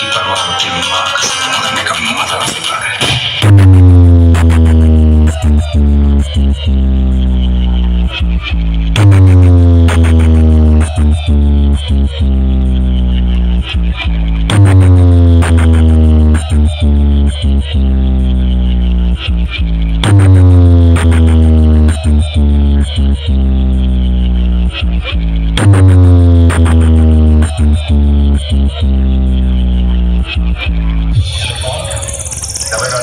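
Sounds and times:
distorted bass note from speakers: 0:03.3 - 0:33.0.

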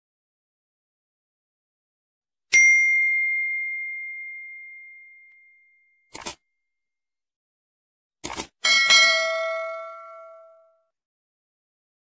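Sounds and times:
bright bell ding: 0:02.5 - 0:06.1, 0:08.6 - 0:10.9.

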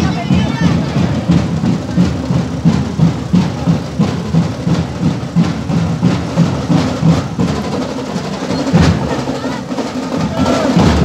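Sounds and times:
deep drum beat: 0:00.0 - 0:11.0.

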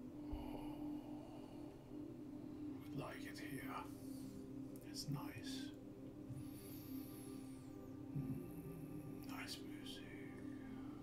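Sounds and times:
faint low hum: 0:00.0 - 0:11.0
man whispering: 0:02.8 - 0:04.0, 0:04.7 - 0:05.8, 0:08.1 - 0:11.0.

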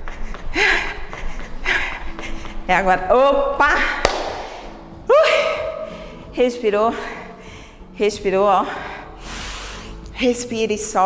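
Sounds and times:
woman breathing heavily: 0:00.0 - 0:02.7, 0:04.4 - 0:08.0, 0:08.6 - 0:10.2.

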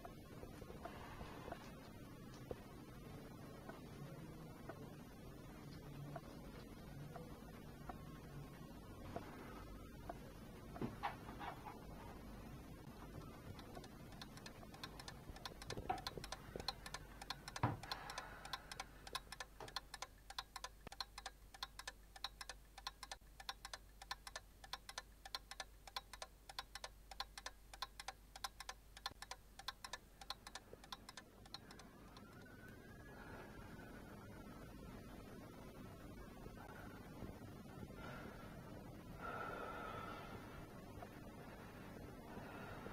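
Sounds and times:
clocks ticking: 0:12.8 - 0:32.6.

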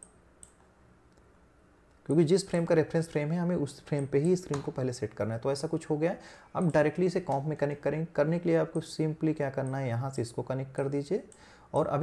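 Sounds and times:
computer mouse clicks: 0:00.0 - 0:01.3, 0:04.0 - 0:04.8.

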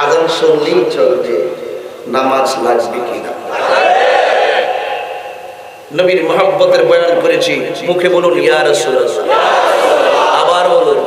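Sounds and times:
man preaching over loudspeaker: 0:00.0 - 0:03.5, 0:05.9 - 0:09.3, 0:10.2 - 0:11.0.

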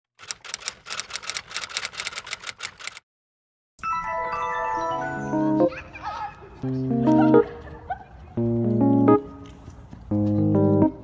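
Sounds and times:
rapid irregular clicking: 0:00.2 - 0:03.0
chiming glockenspiel-like melody: 0:03.8 - 0:05.8.

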